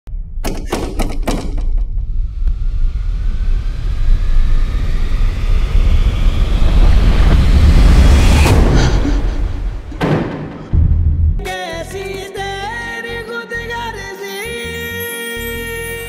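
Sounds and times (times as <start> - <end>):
sharp dramatic hits: 0.1 - 11.4
deep rumbling drone: 1.4 - 10.0, 10.6 - 11.5
faint rising tones: 1.9 - 10.0.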